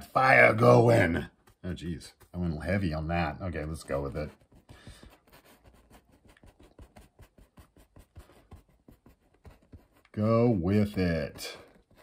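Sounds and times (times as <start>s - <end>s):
paintbrush dabbing on canvas: 0.5s - 12.0s.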